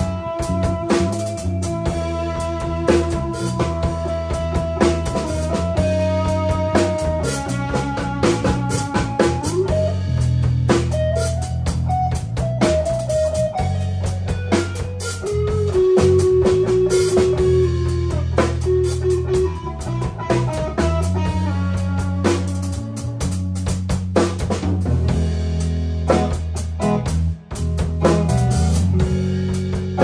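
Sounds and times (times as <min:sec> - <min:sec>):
bass line: 0:00.0 - 0:30.0
drum kit: 0:00.0 - 0:30.0
electric guitar lead: 0:00.0 - 0:30.0.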